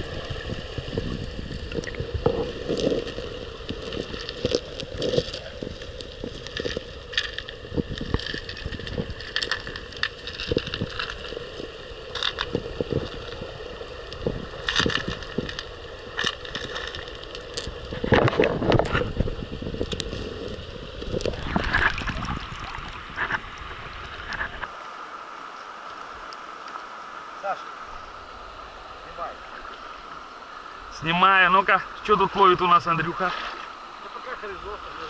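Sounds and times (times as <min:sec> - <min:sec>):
rushing water bursts: 0:00.0 - 0:35.0
sharp clicks and knocks underwater: 0:01.1 - 0:13.4, 0:14.1 - 0:24.7.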